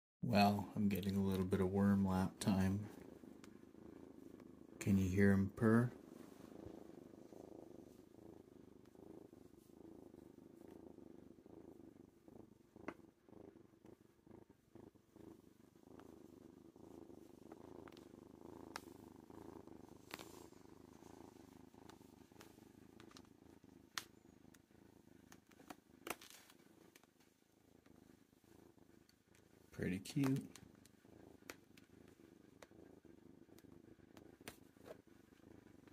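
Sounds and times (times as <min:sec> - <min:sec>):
kitten purring: 0:00.2 - 0:35.9
faint clicks: 0:21.8 - 0:28.0, 0:28.9 - 0:32.8, 0:33.5 - 0:35.1.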